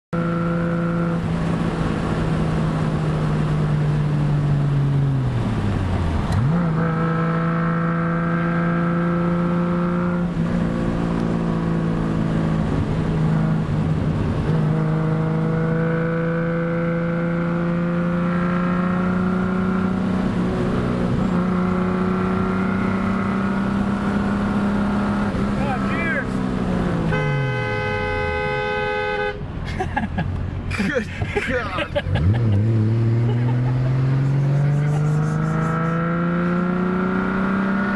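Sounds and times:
car engine cruising: 0.1s - 37.9s
car horn: 27.0s - 29.5s.

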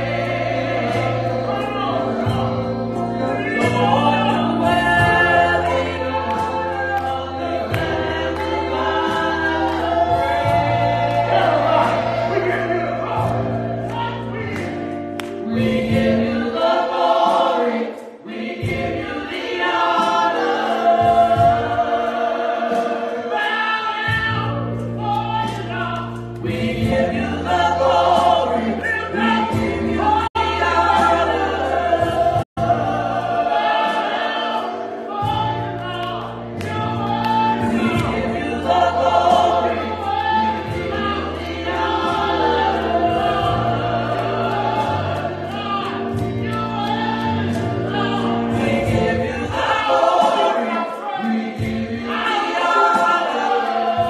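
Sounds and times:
keyboard bass notes: 0.0s - 17.7s, 24.0s - 50.6s
gospel choir singing: 0.0s - 54.0s.

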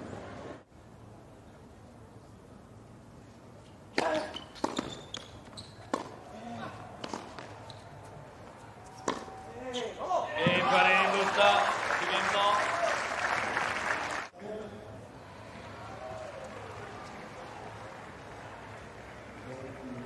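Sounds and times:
racket striking tennis ball: 3.9s - 5.0s, 5.8s - 7.6s, 8.8s - 9.4s
crowd cheering and applauding: 10.6s - 14.3s, 15.2s - 20.0s.

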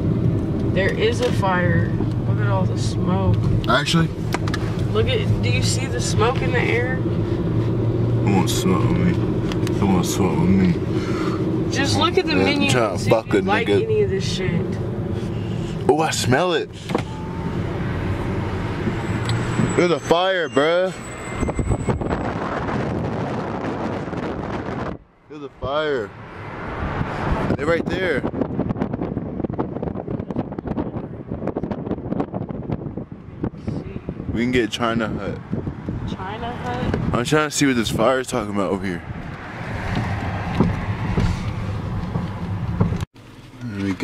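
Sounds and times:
car road noise: 0.0s - 44.0s
wind buffeting microphone: 21.3s - 25.1s, 26.3s - 38.2s, 39.0s - 43.0s.

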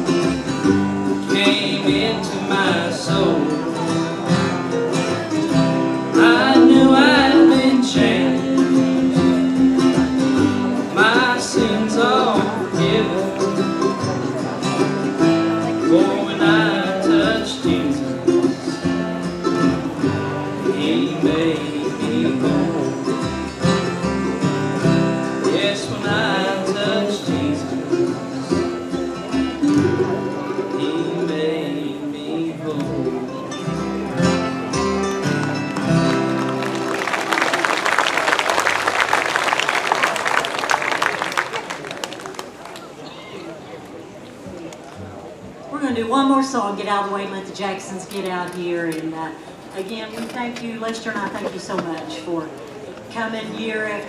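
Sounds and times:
lead melody line: 0.0s - 31.3s
plucked upright bass: 0.0s - 37.3s
strummed acoustic guitars: 0.0s - 37.7s, 44.4s - 54.0s.

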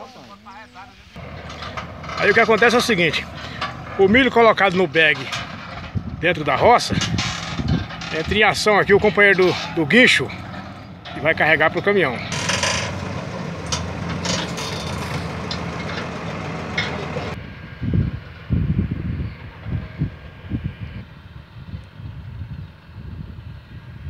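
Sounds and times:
uneven low rumbling: 1.1s - 23.4s
crane knocks: 1.2s - 6.2s, 10.3s - 17.4s
tractor engine running: 1.2s - 20.5s.

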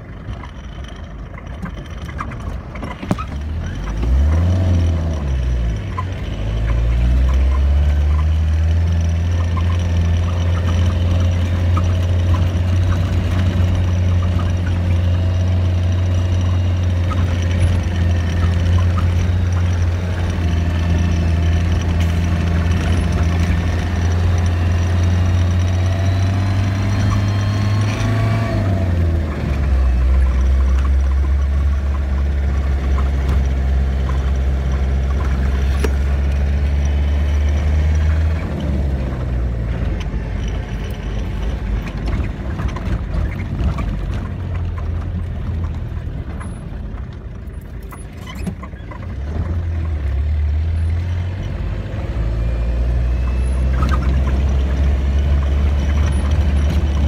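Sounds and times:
car engine from inside cab: 0.0s - 57.0s.

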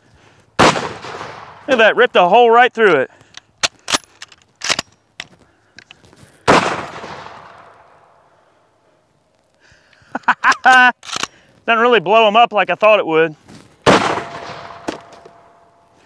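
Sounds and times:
rifle shot echoing: 0.6s - 1.7s, 6.5s - 8.1s, 13.8s - 15.7s
rifle bolt clicks: 3.2s - 6.0s, 10.5s - 11.4s
man laughing: 10.0s - 11.1s.

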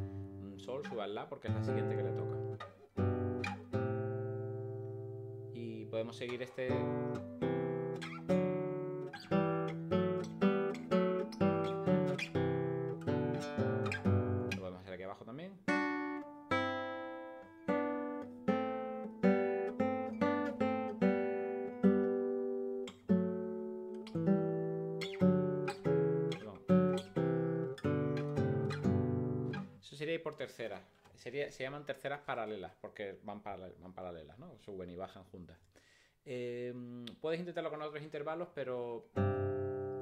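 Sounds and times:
nylon-string guitar playing thirds: 0.0s - 14.8s, 15.6s - 29.8s, 39.1s - 40.0s.

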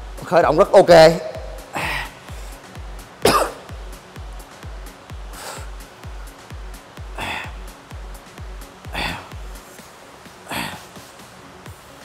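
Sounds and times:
background music with fast beat: 0.0s - 12.0s.

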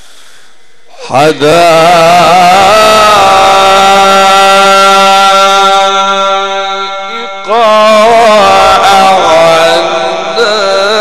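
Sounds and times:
man chanting into a microphone: 0.9s - 11.0s.

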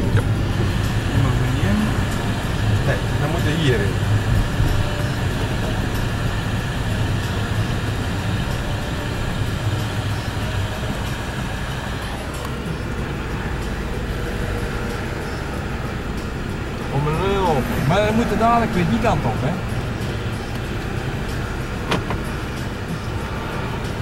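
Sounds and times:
car engine and tyre drone: 0.0s - 24.0s.

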